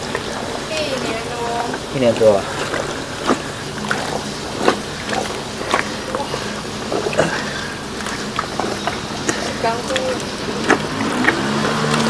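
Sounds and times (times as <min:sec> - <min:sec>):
engine-like hum: 0:00.0 - 0:12.0
wet squelching of battered chicken: 0:00.0 - 0:12.0.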